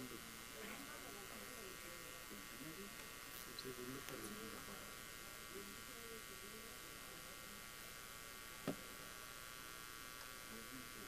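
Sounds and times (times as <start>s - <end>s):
electrical buzz and hiss: 0.0s - 11.0s
faint indistinct voices: 0.0s - 11.0s.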